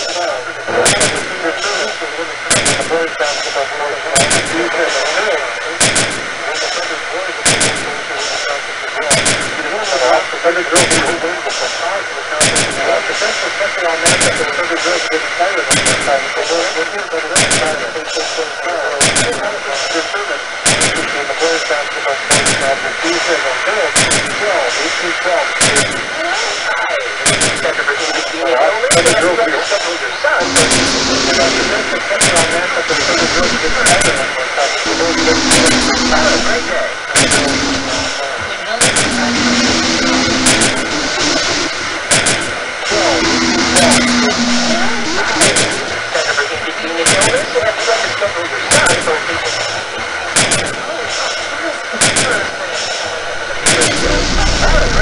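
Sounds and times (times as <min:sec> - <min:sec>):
sharp percussive hits: 0:02.5 - 0:02.9, 0:38.8 - 0:45.9
low held tone: 0:30.4 - 0:38.2, 0:38.8 - 0:45.9, 0:53.2 - 0:55.0
steady high ringing tone: 0:30.4 - 0:38.3, 0:38.9 - 0:45.9
dense churning noise: 0:30.4 - 0:50.9, 0:52.3 - 0:55.0.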